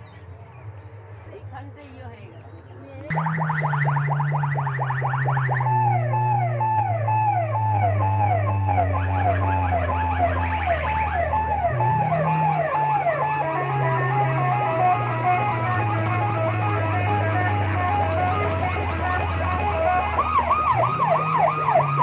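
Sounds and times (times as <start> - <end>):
deep bass drone: 3.1 - 22.0
electronic siren synth effect: 3.1 - 22.0.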